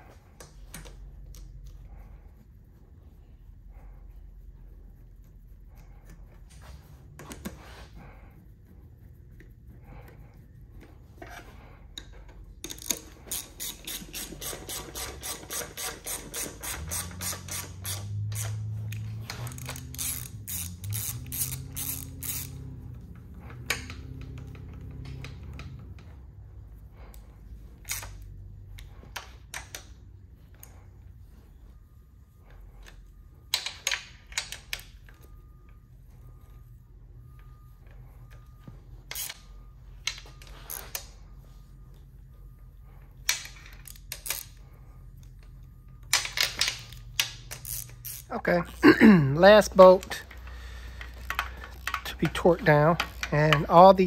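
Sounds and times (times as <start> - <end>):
clinks of bolts and metal parts: 12.0 - 22.8, 33.5 - 35.3, 39.1 - 41.2, 43.2 - 44.6, 45.2 - 48.3
ratchet wrench clicking: 12.0 - 26.1, 27.8 - 30.0, 39.1 - 39.5, 43.3 - 44.6, 46.1 - 48.3, 50.3 - 54.0.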